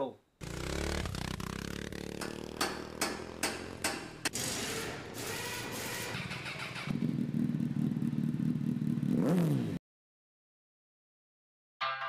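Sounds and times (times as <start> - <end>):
motorcycle engine running: 0.4 - 9.8.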